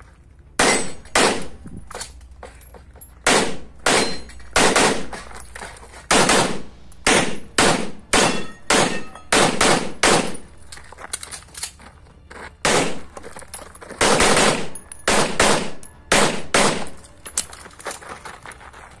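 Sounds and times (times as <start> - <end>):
pistol shots: 0.6 - 1.6, 3.2 - 5.1, 6.1 - 10.5, 12.6 - 13.1, 14.0 - 17.1.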